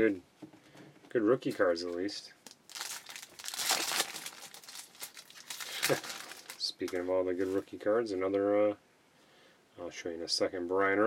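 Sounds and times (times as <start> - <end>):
foil wrapper crinkling: 2.4 - 7.0.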